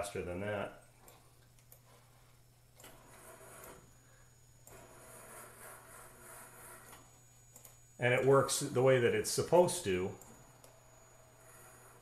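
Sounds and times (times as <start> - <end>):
steady low hum: 0.0 - 12.0
robot servo motors whirring: 4.6 - 7.2, 10.4 - 12.0.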